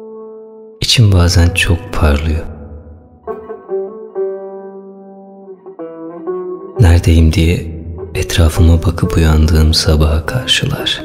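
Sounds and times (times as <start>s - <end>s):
plucked string chords: 1.4s - 11.0s.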